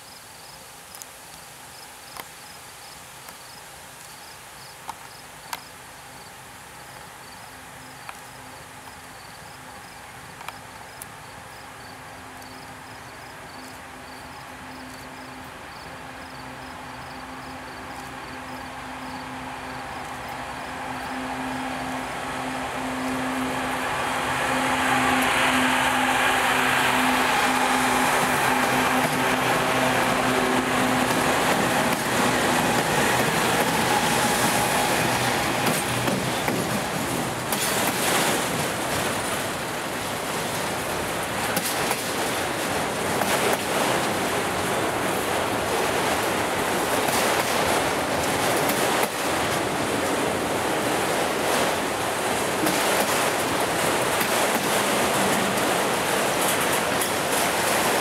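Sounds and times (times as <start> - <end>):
diesel locomotive engine drone: 5.4 - 58.0
train cars rumbling and clattering: 13.1 - 58.0.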